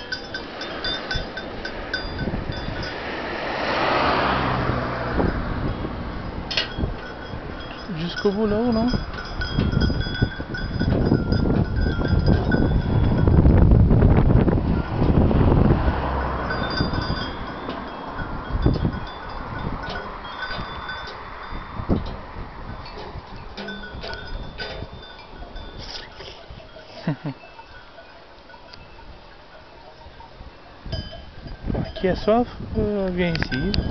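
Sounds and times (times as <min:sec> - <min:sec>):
small bells clinking: 0:00.0 - 0:13.8, 0:15.8 - 0:33.9
wind buffeting microphone: 0:00.0 - 0:33.9.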